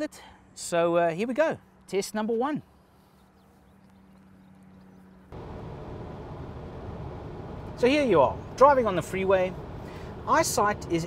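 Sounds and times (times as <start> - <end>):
car road and engine noise: 2.6 - 11.0
low steady hum: 3.0 - 11.0.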